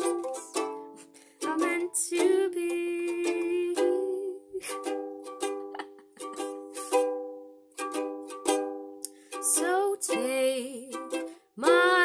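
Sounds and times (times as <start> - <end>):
toy ukulele strumming chords: 0.0 - 12.0.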